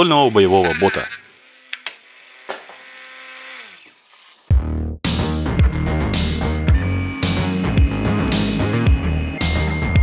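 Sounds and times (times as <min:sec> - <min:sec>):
small electric motors whirring: 0:00.0 - 0:04.5, 0:05.6 - 0:10.0.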